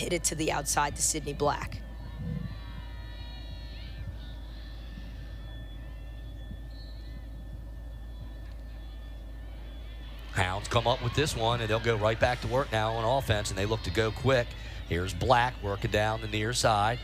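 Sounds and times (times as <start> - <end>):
distant indistinct shouts: 0.0 - 17.0
steady low hum: 0.0 - 17.0.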